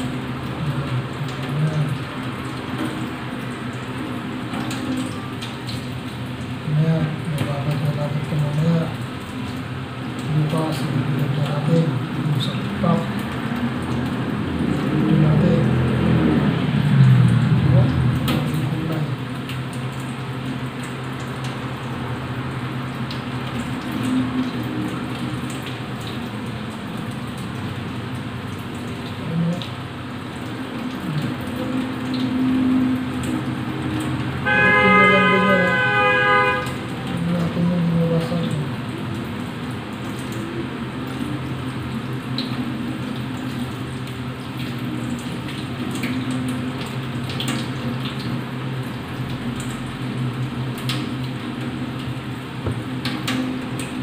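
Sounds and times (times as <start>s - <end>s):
tap water running: 0.0s - 54.0s
horn-like tone: 34.4s - 36.8s.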